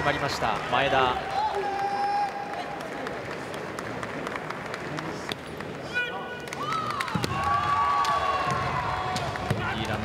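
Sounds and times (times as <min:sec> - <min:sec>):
arena crowd noise: 0:00.0 - 0:10.0
long shout: 0:01.2 - 0:02.7.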